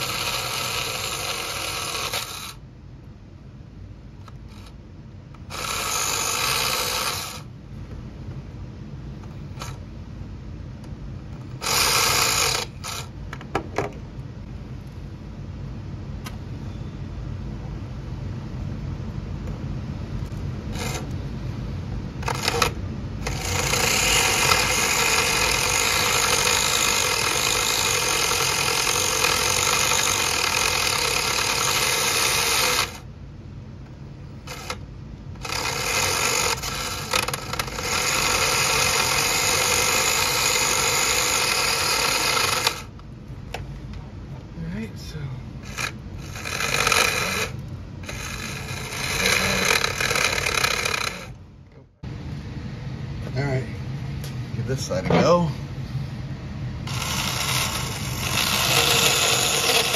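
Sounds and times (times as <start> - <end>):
small electric motor whirring: 0.0 - 2.6, 4.2 - 7.5, 9.4 - 9.8, 11.4 - 13.2, 20.3 - 21.2, 22.2 - 33.1, 34.4 - 43.0, 45.6 - 51.4, 56.8 - 59.9.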